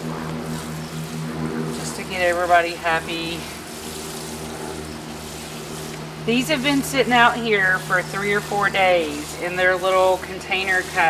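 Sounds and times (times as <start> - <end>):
steady low hum: 0.0 - 11.0
water pouring onto soil: 1.7 - 11.0.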